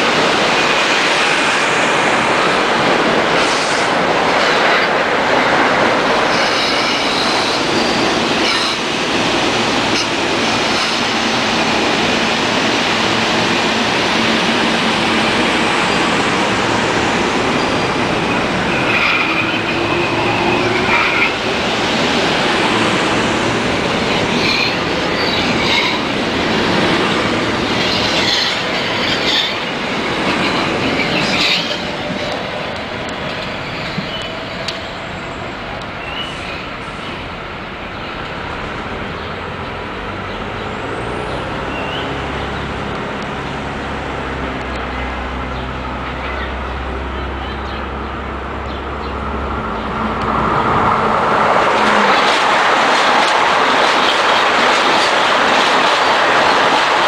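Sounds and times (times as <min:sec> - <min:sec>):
train wheels rushing on rail: 0:00.0 - 0:57.0.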